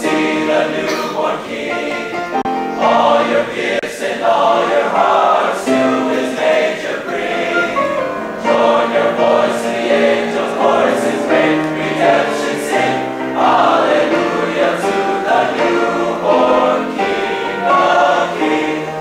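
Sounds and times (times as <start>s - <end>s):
male choir singing in harmony: 0.0s - 19.0s.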